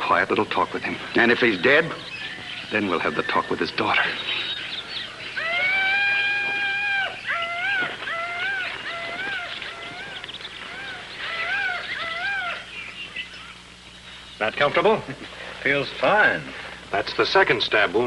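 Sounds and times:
animal calling: 0.8 - 14.5.

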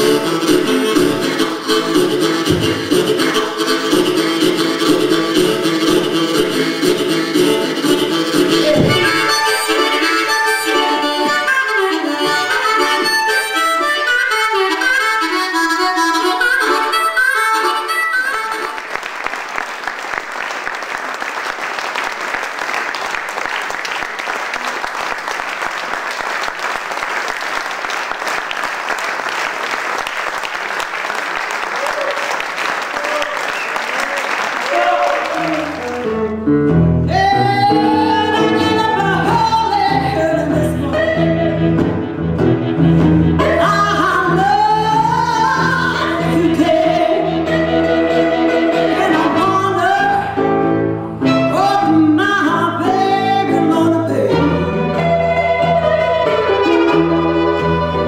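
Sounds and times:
guitar playing: 0.0 - 18.9, 35.3 - 58.0
blues harmonica: 0.0 - 19.0, 35.2 - 58.0
audience applause: 18.6 - 36.3.

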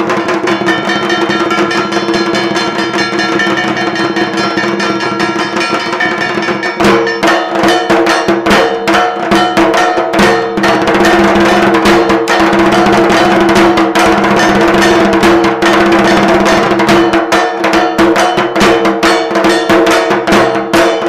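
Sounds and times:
steady held tones: 0.0 - 17.6
drums: 0.0 - 21.0
fast metallic clanging: 0.0 - 21.0.

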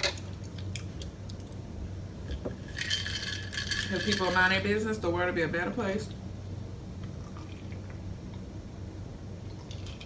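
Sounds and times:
ice cubes clinking in glass: 2.6 - 4.5.

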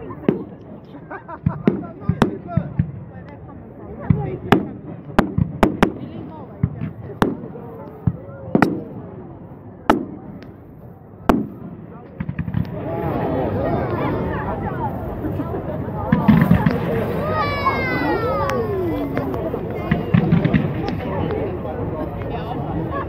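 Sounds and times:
firework bangs: 1.4 - 3.2, 4.0 - 15.2, 16.0 - 21.4.

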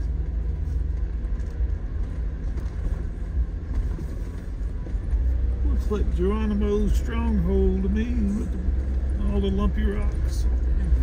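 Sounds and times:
engine and tyres rumbling: 0.0 - 11.0.

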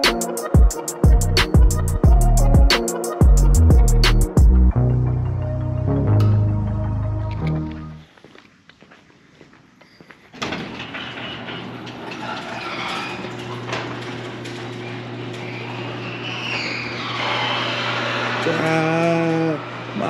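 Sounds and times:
background music: 0.0 - 8.1
garage door clicks: 10.3 - 18.3
garage door opener motor hum: 10.4 - 20.0.

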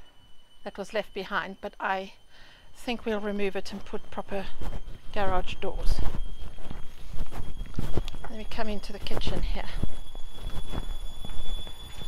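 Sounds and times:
footsteps on hard ground: 3.4 - 12.0.

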